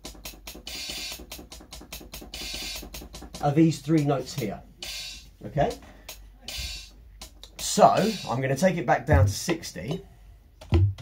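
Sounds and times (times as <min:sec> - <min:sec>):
hissing hi-hat hits: 0:00.0 - 0:10.0
drum machine hi-hat ticks: 0:00.0 - 0:11.0.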